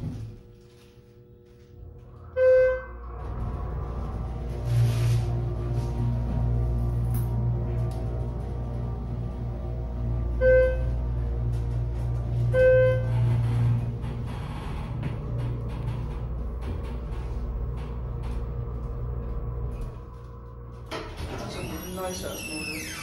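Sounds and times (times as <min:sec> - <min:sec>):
elevator pump motor humming: 0:00.0 - 0:23.0
elevator car clatter: 0:02.4 - 0:23.0.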